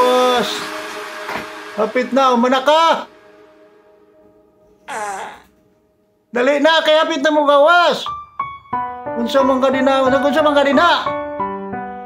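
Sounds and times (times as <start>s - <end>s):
man groaning: 4.9s - 5.5s.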